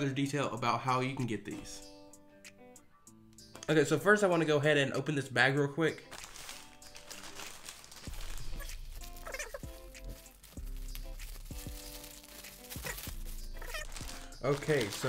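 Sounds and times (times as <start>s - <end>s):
plastic bag crinkling: 6.1s - 15.0s
background music with bass: 8.1s - 15.0s.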